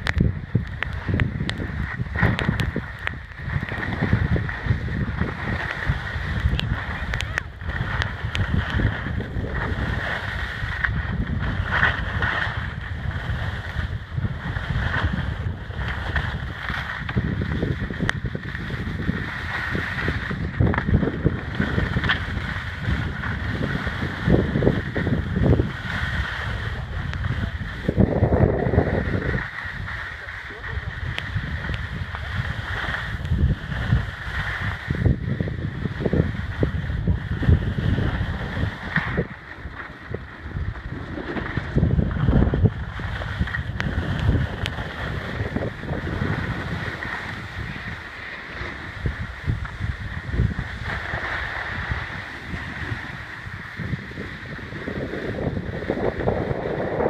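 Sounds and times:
wind buffeting microphone: 0.0 - 57.0
ski edges scraping snow: 0.8 - 57.0.

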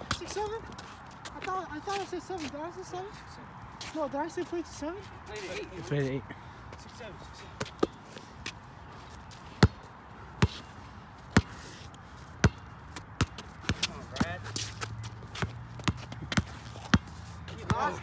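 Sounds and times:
basketball bouncing on concrete: 0.0 - 0.6, 9.6 - 10.6, 11.3 - 11.5, 12.4 - 14.4, 15.1 - 18.0.

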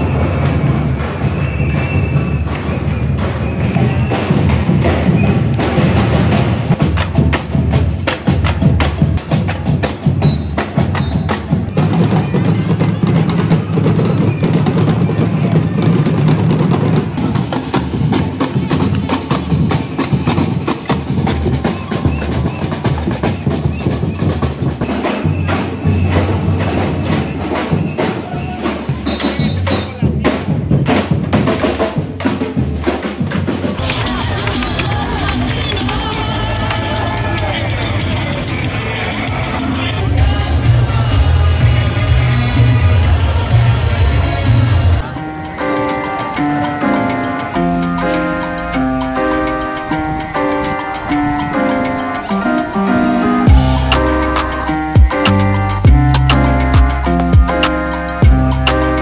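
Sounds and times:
percussion band drumming: 0.0 - 40.4, 44.6 - 59.0
crowd voices: 0.0 - 59.0.

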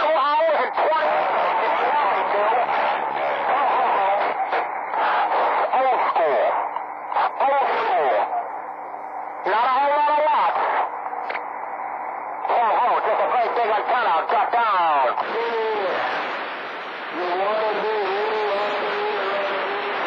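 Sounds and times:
radio hiss: 0.0 - 20.0
voices over radio speaker: 0.0 - 20.0.

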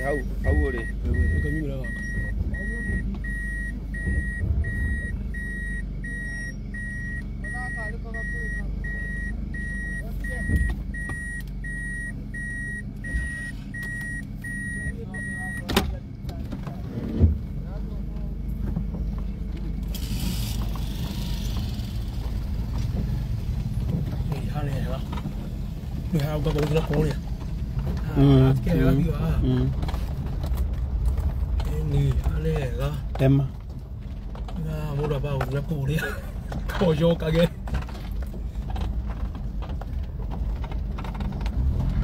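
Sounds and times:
electronic beeps: 0.0 - 15.7
low engine rumble: 0.0 - 42.0.

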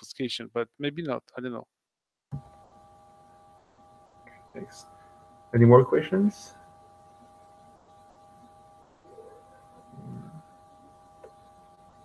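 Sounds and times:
thin steady tones: 2.3 - 12.0.

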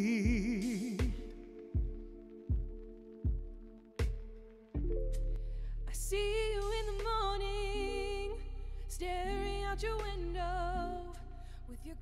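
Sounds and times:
low bass notes: 4.8 - 12.0.

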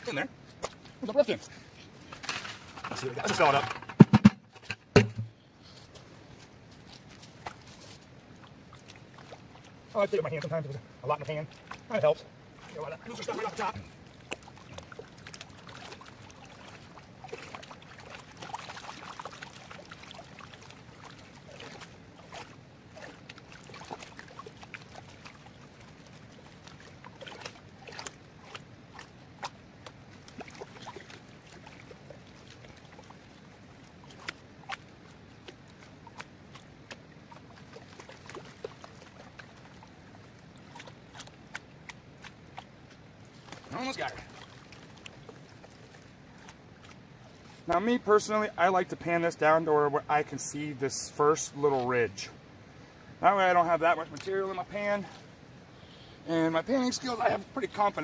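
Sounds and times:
water sloshing in a pan: 0.1 - 49.2
gravel clicks and splashes: 5.6 - 48.7.

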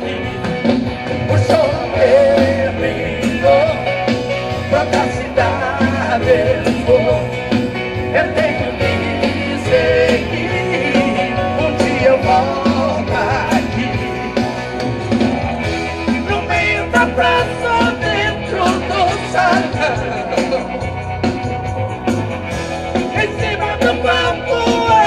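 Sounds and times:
bass: 0.0 - 25.0
keyboards: 0.0 - 25.0
live band electric guitars: 0.0 - 25.0
steady drum beat: 0.0 - 25.0.

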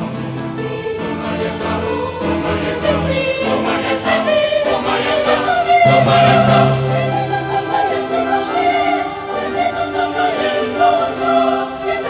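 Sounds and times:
choir singing in parts: 0.0 - 12.0.

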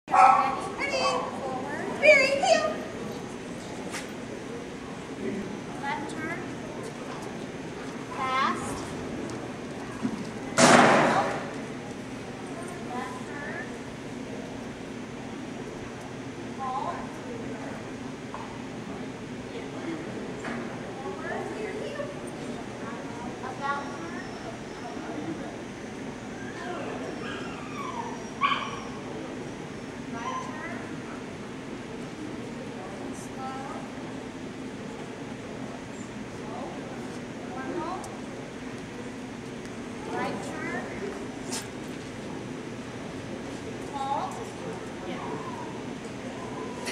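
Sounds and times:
background chatter: 0.1 - 46.9
people talking indoors: 0.1 - 46.9
dog crying and yelping: 27.2 - 29.0.

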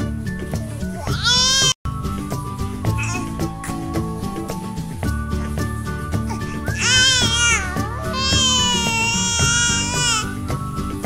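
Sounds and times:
background music: 0.0 - 11.0
baby squealing: 0.7 - 1.8, 3.0 - 3.4, 6.3 - 10.5.

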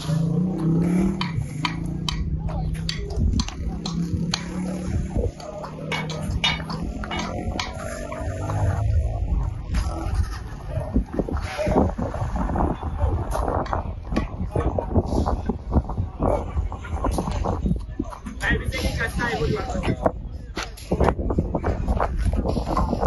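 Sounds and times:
indistinct voices: 0.0 - 23.0
outdoor background noise: 0.0 - 23.0.

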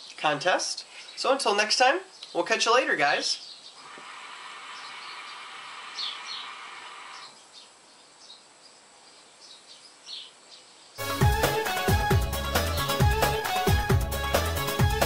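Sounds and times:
birds chirping faintly: 0.0 - 11.0
hookah bubbling: 3.8 - 7.4
loud music: 11.0 - 15.0.

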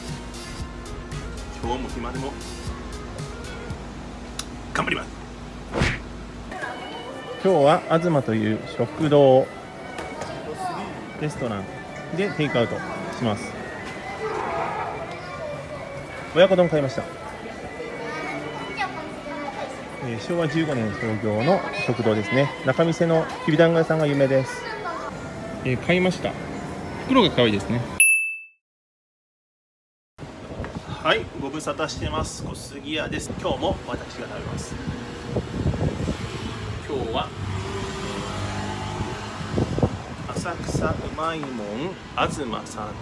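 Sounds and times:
short sounds: 5.7 - 6.2
people talking in background: 6.4 - 28.0.

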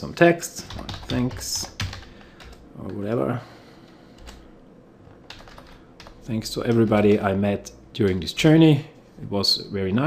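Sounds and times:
computer keyboard keystrokes: 0.6 - 3.0, 5.1 - 7.2.

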